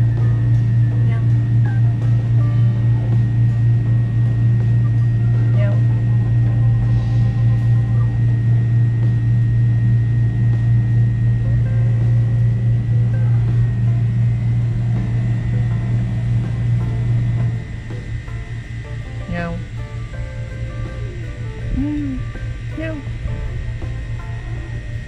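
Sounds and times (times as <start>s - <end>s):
faint high whine: 0.0s - 25.0s
low machine hum: 0.0s - 25.0s.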